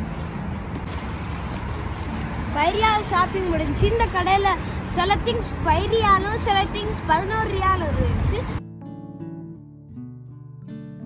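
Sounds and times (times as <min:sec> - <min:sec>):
traffic engine rumble: 0:00.0 - 0:08.6.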